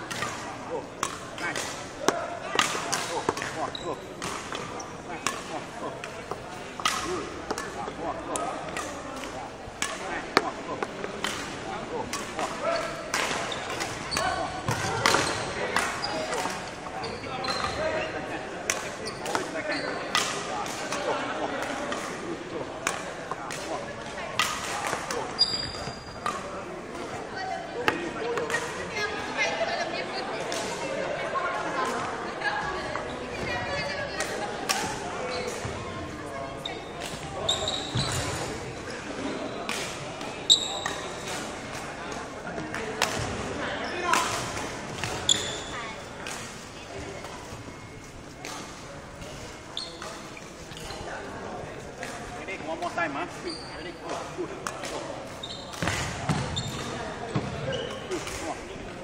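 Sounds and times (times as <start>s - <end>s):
shoes squeaking on wooden floor: 25.2s - 26.2s, 36.6s - 38.7s, 40.5s - 41.2s, 49.8s - 51.1s, 53.4s - 53.9s, 55.3s - 58.2s.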